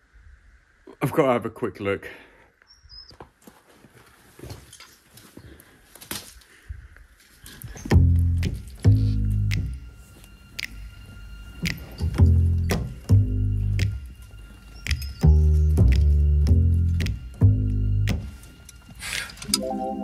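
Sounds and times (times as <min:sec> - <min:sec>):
music with heavy bass: 0:07.9 - 0:10.0, 0:11.6 - 0:14.1, 0:14.8 - 0:18.5.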